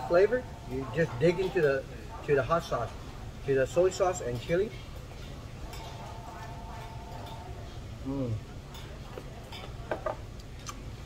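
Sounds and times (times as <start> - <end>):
man chewing crunchy food: 10.4 - 10.9.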